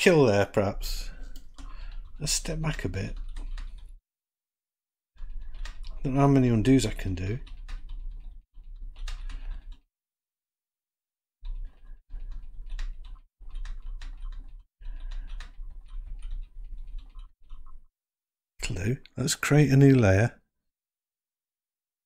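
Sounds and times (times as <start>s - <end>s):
computer keyboard keys clicking: 3.0s - 4.0s, 5.2s - 9.8s, 11.4s - 17.8s.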